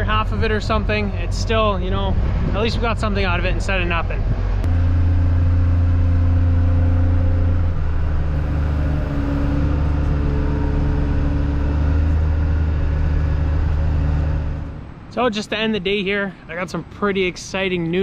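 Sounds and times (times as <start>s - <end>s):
diesel engine running: 0.0s - 15.2s.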